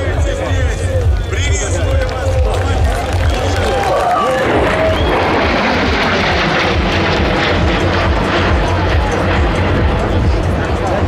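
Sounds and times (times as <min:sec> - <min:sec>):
loud jet engine noise: 0:00.0 - 0:11.0.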